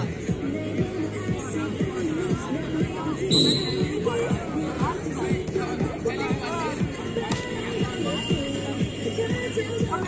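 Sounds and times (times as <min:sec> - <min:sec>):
background music: 0:00.0 - 0:10.0
crowd chatter: 0:00.0 - 0:10.0
referee's whistle blast: 0:03.3 - 0:03.9.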